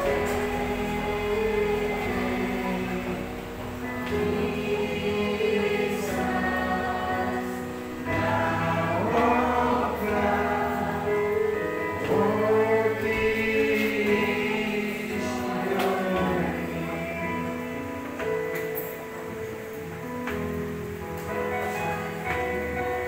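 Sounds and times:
group singing a hymn: 0.0 - 18.5.

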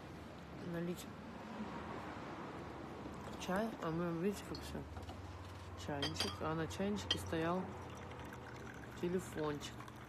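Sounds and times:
porcelain clinks: 6.0 - 7.4.

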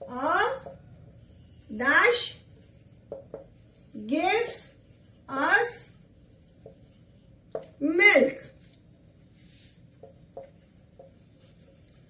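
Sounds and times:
marker pen writing on whiteboard: 0.0 - 12.0.

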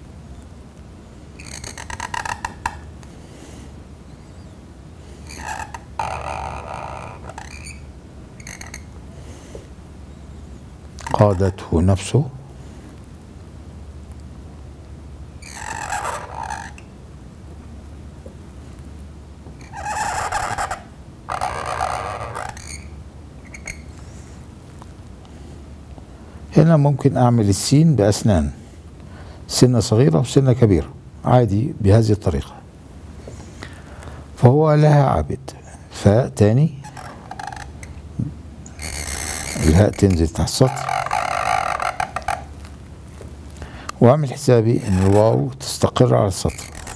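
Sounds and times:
low steady hum: 0.0 - 46.9
pen scratching across paper: 44.8 - 45.2.

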